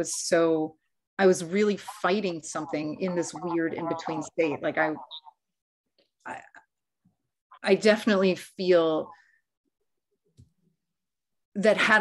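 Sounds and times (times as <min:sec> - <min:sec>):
woman speaking: 0:00.0 - 0:05.2, 0:06.3 - 0:06.7, 0:07.5 - 0:09.2, 0:11.6 - 0:12.0.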